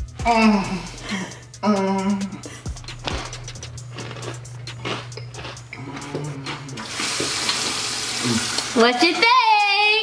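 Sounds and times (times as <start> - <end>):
water running from a tap into a sink: 6.8 - 10.0.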